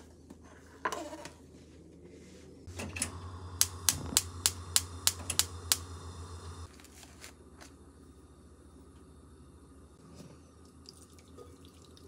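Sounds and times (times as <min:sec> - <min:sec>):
low steady hum: 0:01.5 - 0:12.0
gas igniter clicking: 0:02.9 - 0:06.6.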